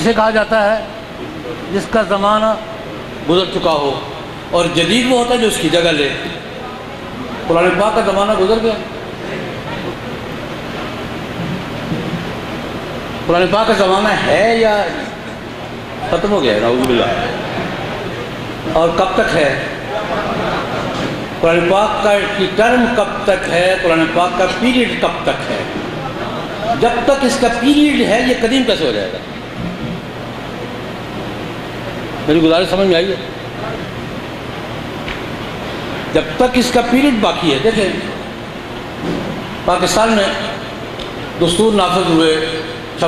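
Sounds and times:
man speaking: 3.3 - 9.0, 16.0 - 17.4, 18.6 - 19.9, 21.4 - 29.3, 36.2 - 38.3, 39.6 - 40.6, 41.4 - 43.0.

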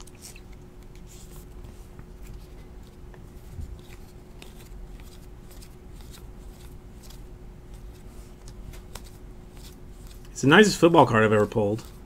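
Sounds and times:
trading cards flipped by hand: 0.0 - 10.4, 11.4 - 12.0
faint steady hum: 0.0 - 12.0.

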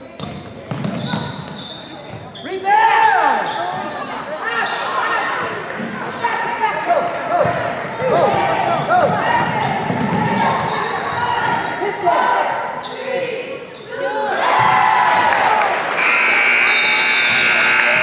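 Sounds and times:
sneakers squeaking on hardwood: 0.0 - 6.1, 7.0 - 12.1.

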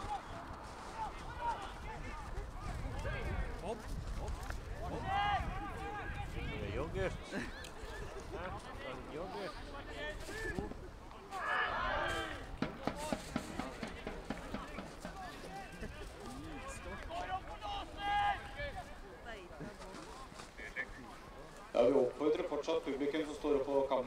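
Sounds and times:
footballers shouting: 4.8 - 6.6, 11.2 - 18.6
short knocks: 12.6 - 15.2.

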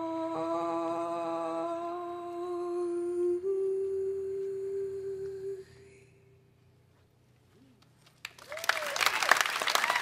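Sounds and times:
woman humming a held note: 0.0 - 6.1.

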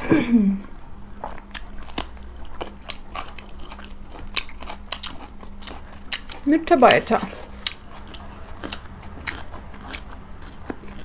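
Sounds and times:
crunchy chewing of raw carrot: 1.1 - 11.0.

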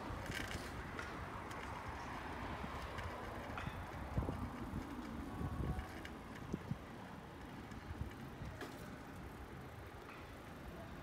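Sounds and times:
bicycle tyres rumbling on asphalt: 0.0 - 11.0
wind on microphone: 2.6 - 6.9.

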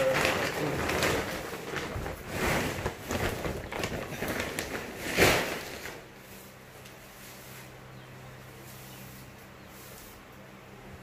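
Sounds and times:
broom sweeping concrete floor: 2.1 - 3.1, 4.8 - 10.8.

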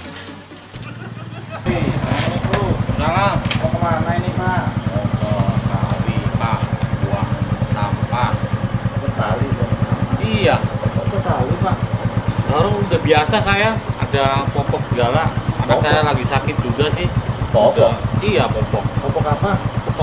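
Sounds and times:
motorcycle engine idling: 0.7 - 20.0.

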